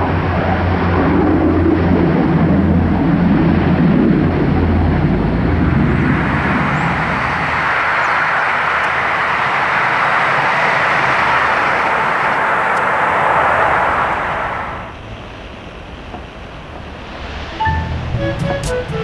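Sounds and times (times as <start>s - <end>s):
turboprop airliner roar: 0.0s - 19.0s.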